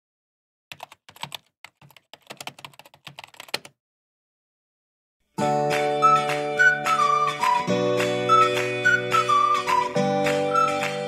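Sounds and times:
computer keyboard typing: 0.7 - 3.8.

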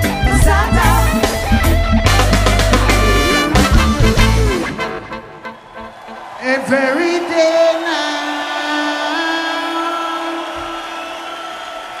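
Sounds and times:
reggae band holding a chord: 0.0 - 6.8.

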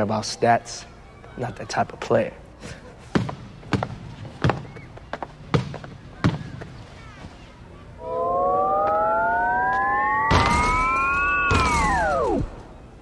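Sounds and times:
electronic tone gliding upward: 8.0 - 12.7
crashing noise bursts: 10.0 - 12.7.

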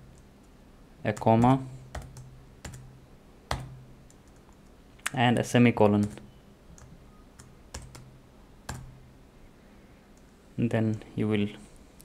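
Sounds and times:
computer keyboard keystrokes: 1.1 - 2.9, 3.5 - 4.7, 5.8 - 6.2, 6.8 - 8.1, 8.7 - 8.9.

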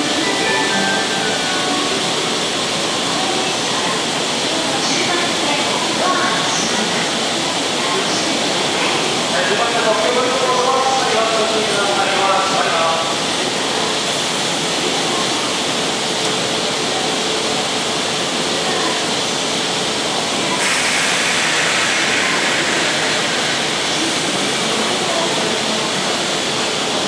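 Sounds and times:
electric train hissing: 0.0 - 27.0
station background noise: 0.0 - 27.0
train starting to move: 0.0 - 27.0.

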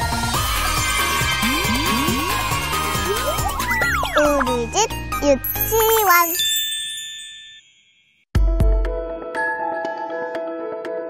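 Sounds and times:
children's voices gliding in pitch: 0.8 - 4.6
bright jingle music: 1.4 - 8.3
high twinkling chime: 5.4 - 8.3.

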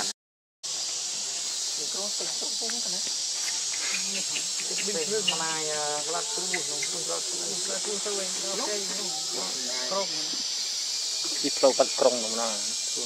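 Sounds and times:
insects droning: 0.6 - 13.0.

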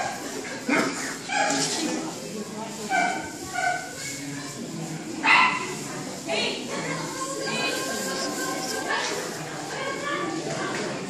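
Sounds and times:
dog barking: 5.2 - 5.8.

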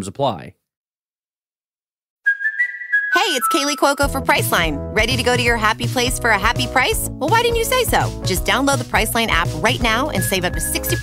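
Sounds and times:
high whistle-like tone: 2.2 - 4.0, 10.2 - 11.0.

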